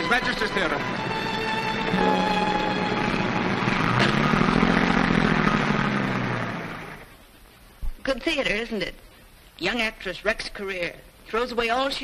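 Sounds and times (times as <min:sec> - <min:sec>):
car engine pulling away: 0:00.6 - 0:07.2.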